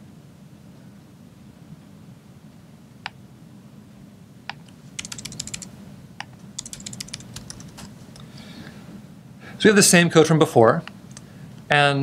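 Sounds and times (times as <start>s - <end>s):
laptop keyboard typing: 4.6s - 5.7s, 6.6s - 8.0s.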